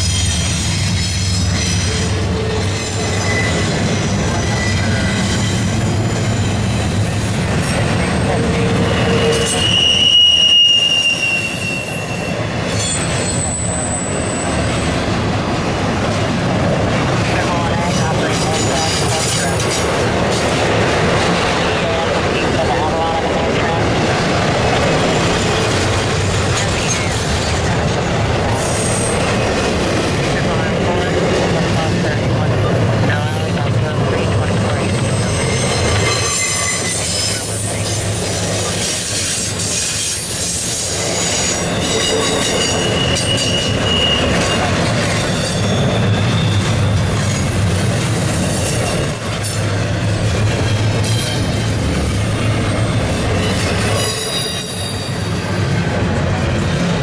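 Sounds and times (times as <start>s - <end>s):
high-pitched wheel squeals: 0.0s - 7.8s, 8.4s - 14.9s, 35.0s - 47.5s, 52.5s - 55.4s
steel wheels rumbling on rail: 0.0s - 57.0s.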